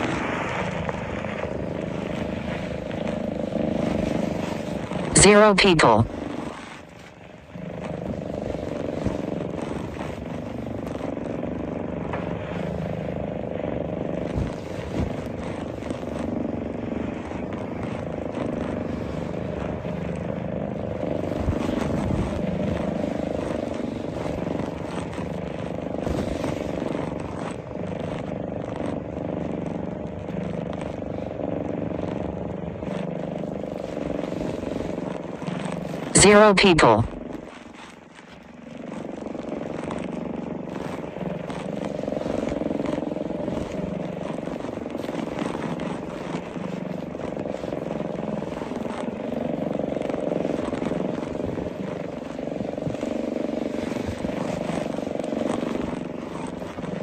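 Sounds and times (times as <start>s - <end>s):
low droning hum: 0.0s - 57.0s.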